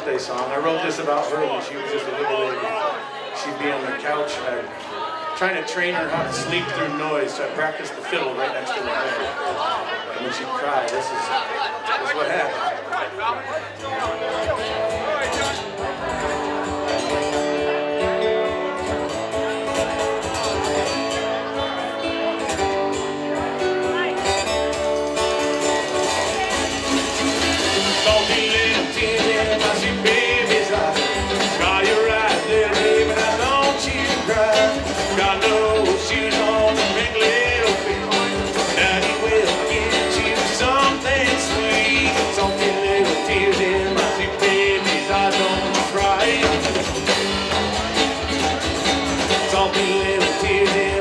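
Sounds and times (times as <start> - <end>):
man singing: 5.8 - 7.4, 27.8 - 47.2, 49.2 - 51.0
strummed acoustic guitar: 5.9 - 7.6, 13.8 - 51.0
upright bass: 6.0 - 7.4, 13.8 - 51.0
electric guitar: 13.9 - 51.0.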